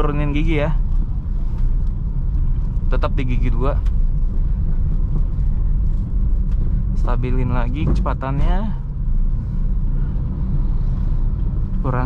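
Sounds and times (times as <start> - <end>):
car engine and tyres rumbling: 0.0 - 12.0
man speaking: 2.9 - 3.8.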